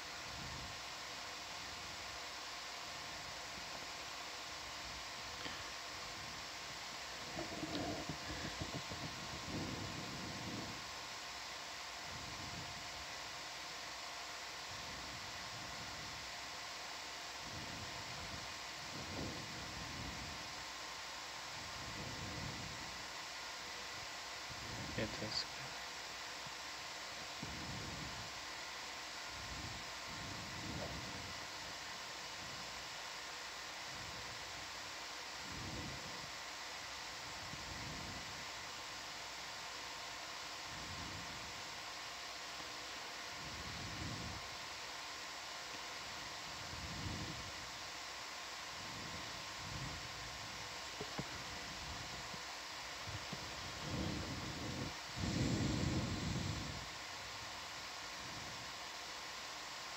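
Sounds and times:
audio line hiss: 0.0 - 59.9
faint electrical hum: 0.0 - 59.9.

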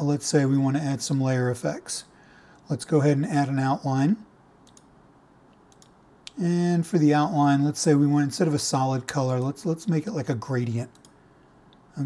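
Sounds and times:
computer mouse clicks: 4.6 - 4.9, 5.5 - 6.4, 10.9 - 11.8.

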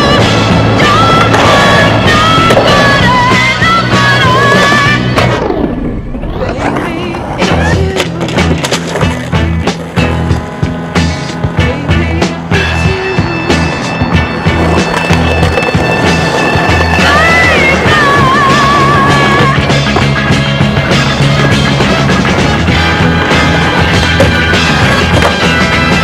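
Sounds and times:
music with bass line: 0.0 - 5.5, 6.5 - 26.0
skateboard clacks: 0.0 - 5.5, 6.4 - 26.0
skateboard wheels rolling on pavement: 0.0 - 26.0.

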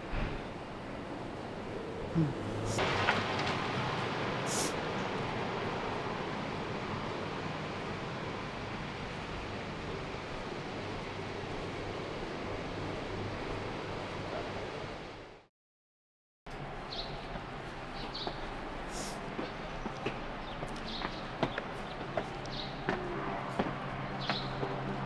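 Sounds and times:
outdoor background noise: 0.0 - 15.5, 16.5 - 25.0.

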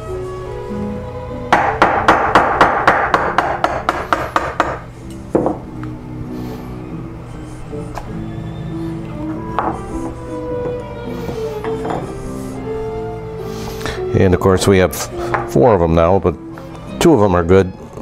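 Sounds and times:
mallet striking a chisel: 1.5 - 4.8.

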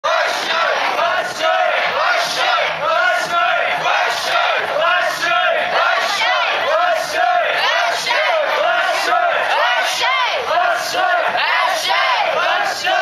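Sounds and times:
group chanting in unison: 0.0 - 13.0.

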